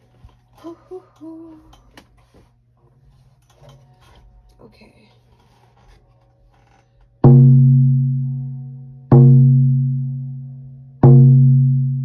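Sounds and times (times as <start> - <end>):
frame drum ringing: 7.2 - 12.0.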